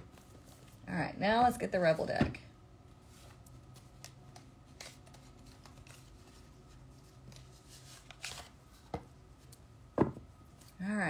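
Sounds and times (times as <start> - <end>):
faint steady hum: 0.0 - 11.0
card deck rustling: 3.2 - 8.9.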